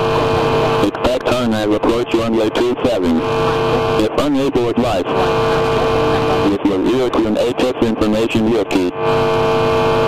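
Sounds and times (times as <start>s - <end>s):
radio voice transmissions: 0.0s - 10.0s.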